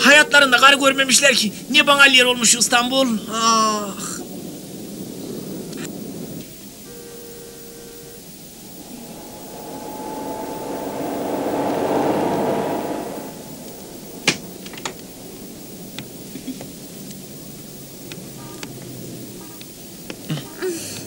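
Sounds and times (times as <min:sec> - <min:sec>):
car engine approaching: 0:08.4 - 0:16.0.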